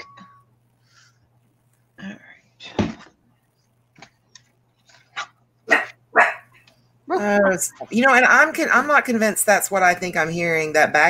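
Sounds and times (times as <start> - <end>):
dog barking: 5.7 - 6.5.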